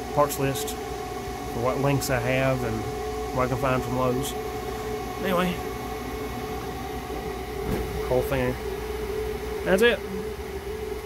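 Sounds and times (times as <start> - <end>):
fan and water pump humming: 0.0 - 11.0.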